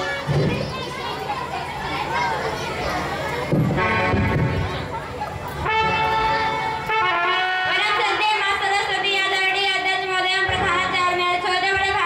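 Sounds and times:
electronic keyboard brass-like notes: 3.7s - 5.0s, 5.6s - 8.2s.

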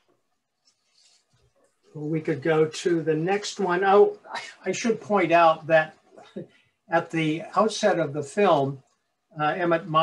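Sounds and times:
man's voice: 2.0s - 8.8s, 9.4s - 10.0s.

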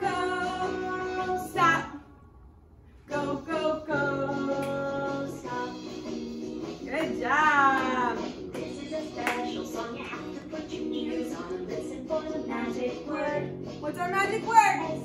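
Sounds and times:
children's song singing: 0.0s - 2.0s, 3.1s - 15.0s.

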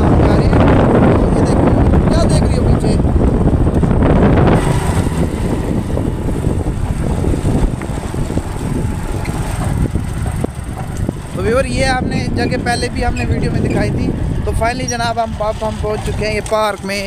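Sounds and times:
motorcycle engine and wind rush: 0.0s - 17.0s.

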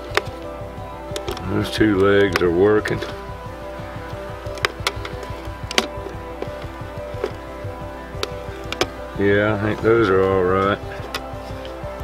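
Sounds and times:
background music of held tones: 0.0s - 12.0s.

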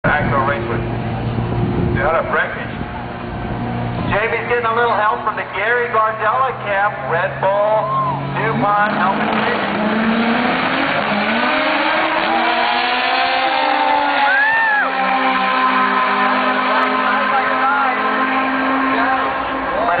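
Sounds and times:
voice: 0.0s - 0.8s, 2.0s - 2.8s, 4.1s - 9.7s, 16.5s - 18.1s
race car engines accelerating: 0.0s - 20.0s.

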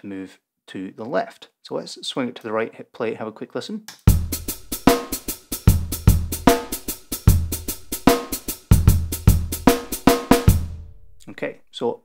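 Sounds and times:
snare drum: 4.0s - 10.9s
programmed drum beat: 4.0s - 11.8s
kick drum: 4.1s - 4.6s, 5.7s - 6.6s, 8.7s - 11.0s
fast hi-hats: 4.1s - 11.6s.

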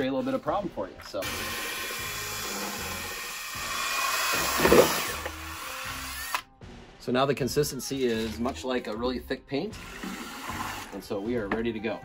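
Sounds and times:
drill with paddle mixer spinning: 1.2s - 6.4s, 9.8s - 11.2s.

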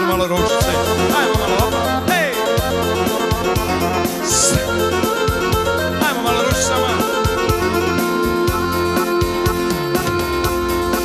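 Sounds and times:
keyboard instrumental with beat: 0.0s - 11.0s.

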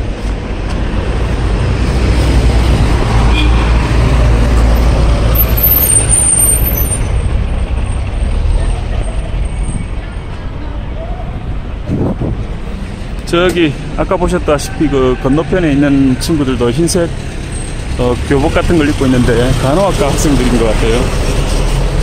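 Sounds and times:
large vehicle engine rumbling: 0.0s - 22.0s
high squeal: 5.4s - 7.3s.

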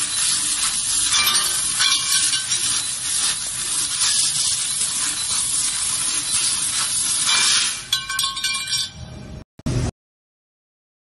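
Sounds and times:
laser cutter hissing: 0.0s - 7.9s.

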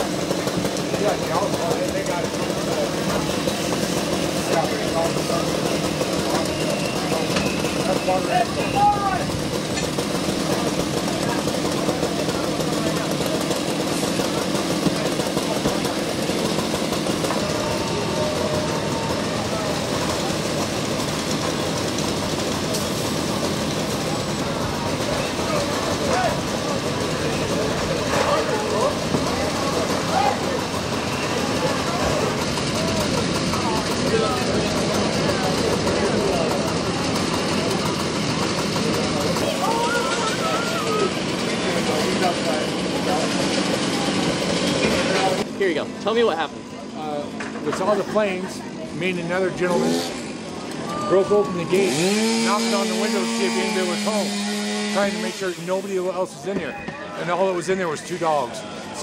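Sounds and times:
engine running: 0.0s - 59.0s.

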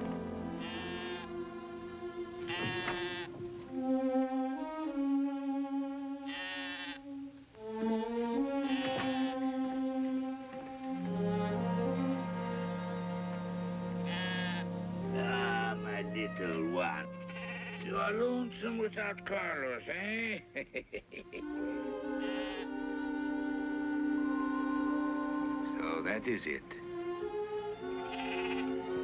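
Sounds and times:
background music of held notes: 0.0s - 29.0s
lamb bleating: 0.6s - 1.3s, 2.4s - 3.3s, 6.3s - 7.0s, 8.6s - 9.4s, 14.0s - 18.1s, 22.2s - 22.7s, 28.0s - 28.7s.

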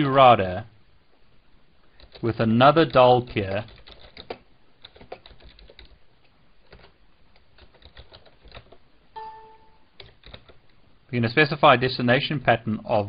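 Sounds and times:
keyboard typing: 2.0s - 2.3s, 2.9s - 6.0s, 6.6s - 10.7s
short electronic beep: 9.2s - 9.9s.

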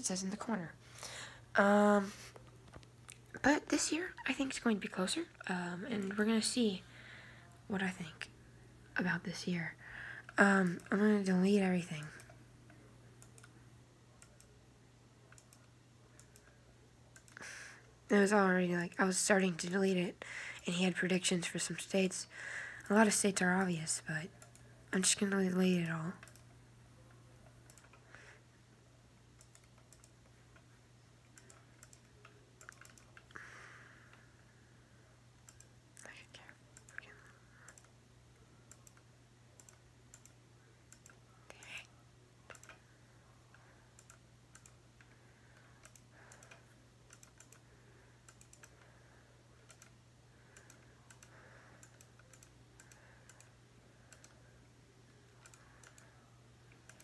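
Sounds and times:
steady low hum: 0.0s - 57.0s
computer mouse clicks: 6.0s - 6.3s, 11.9s - 12.4s, 13.2s - 13.6s, 14.2s - 14.5s, 15.3s - 17.4s, 24.4s - 26.5s, 27.4s - 28.0s, 29.4s - 30.7s, 31.3s - 33.4s, 35.4s - 38.0s, 38.7s - 41.9s, 42.5s - 42.8s, 43.5s - 45.2s, 45.8s - 47.6s, 48.2s - 48.9s, 49.6s - 54.4s, 55.4s - 56.1s, 56.7s - 57.0s
computer input clicks: 29.4s - 30.2s, 31.4s - 33.3s, 42.5s - 42.8s, 44.0s - 44.8s, 45.8s - 47.6s, 48.3s - 48.8s, 49.6s - 49.9s, 55.4s - 56.1s.

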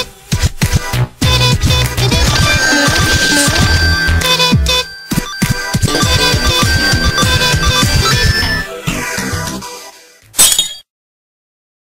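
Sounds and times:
electronic music with falling sweep: 2.1s - 9.8s
glass shattering sound effect: 10.4s - 10.9s.

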